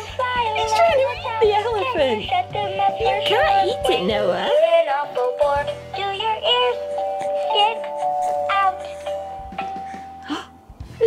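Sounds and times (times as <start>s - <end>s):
toy playing children's song: 0.0s - 10.3s.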